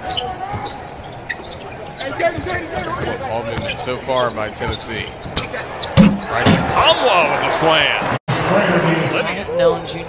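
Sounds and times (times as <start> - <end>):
sneaker squeaks: 0.0 - 6.7.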